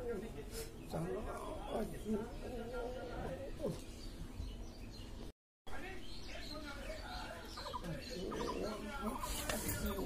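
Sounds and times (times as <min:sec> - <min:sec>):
background voices: 0:06.9 - 0:10.0
chickens clucking: 0:07.1 - 0:10.0.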